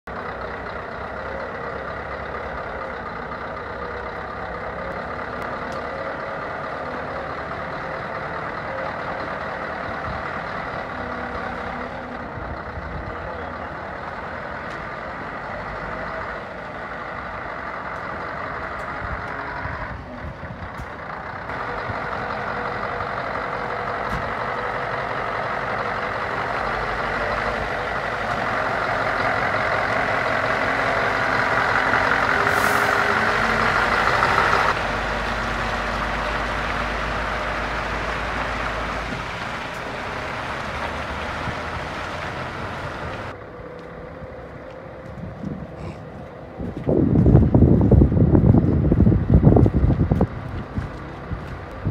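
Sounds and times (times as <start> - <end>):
diesel truck engine: 0.0 - 51.9.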